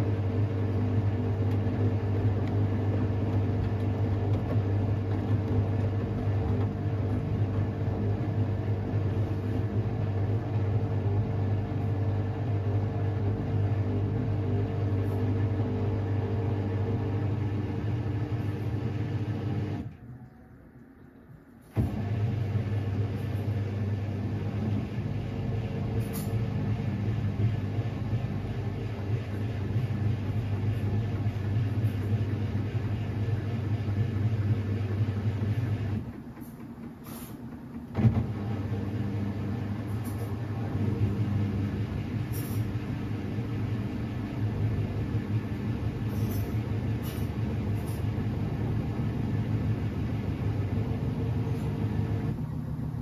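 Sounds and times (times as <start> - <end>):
washing machine motor humming: 0.0 - 53.0.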